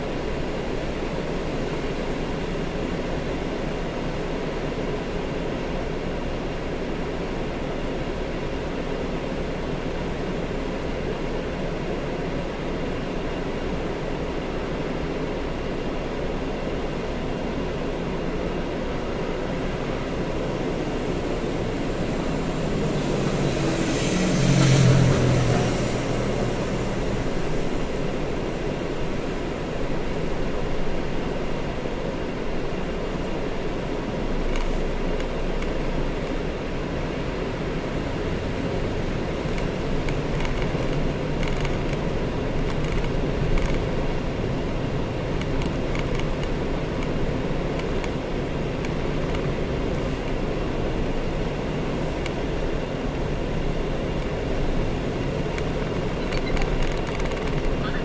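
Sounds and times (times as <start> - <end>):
road traffic and engine hum: 0.0 - 58.0
vehicle passing close by: 21.0 - 28.0.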